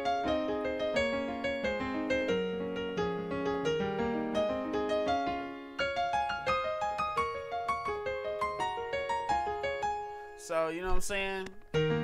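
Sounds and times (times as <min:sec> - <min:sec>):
piano chord progression: 0:00.0 - 0:12.0.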